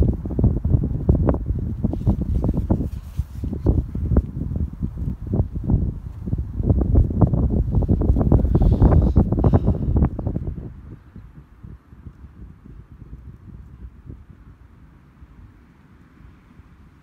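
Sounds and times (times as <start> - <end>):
gusty wind on microphone: 0.0 - 17.0.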